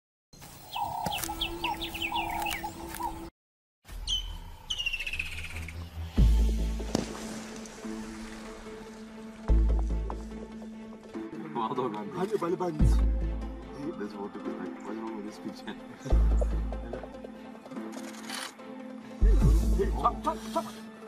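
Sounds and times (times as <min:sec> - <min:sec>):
bird chirps and calls: 0:00.6 - 0:03.3, 0:04.0 - 0:05.9
background music with held notes: 0:05.7 - 0:21.0.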